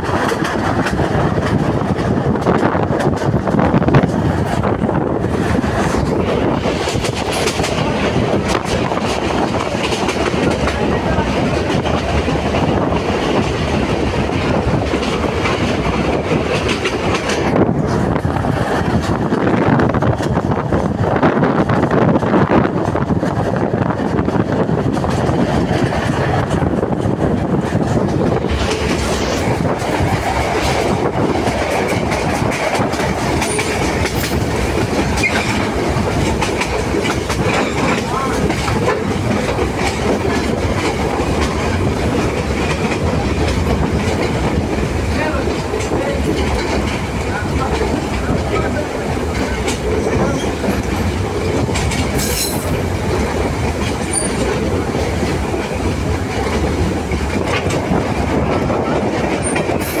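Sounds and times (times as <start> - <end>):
train wheels rumbling on rail: 0.0 - 60.0
wind noise: 0.0 - 60.0.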